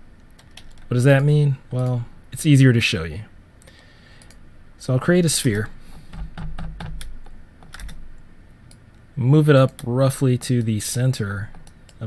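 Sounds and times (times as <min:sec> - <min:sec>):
keyboard and mouse clicking: 0:00.2 - 0:00.9, 0:04.2 - 0:04.4, 0:06.1 - 0:08.0.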